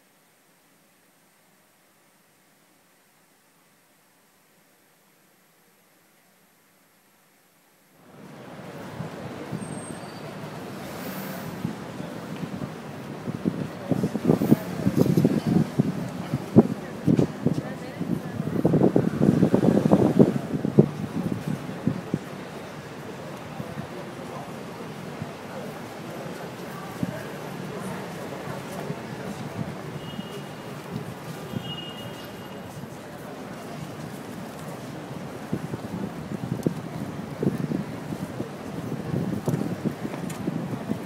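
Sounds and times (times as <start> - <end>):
faint street ambience: 0.0 - 41.0
wind buffeting microphone: 11.5 - 30.0, 32.7 - 41.0.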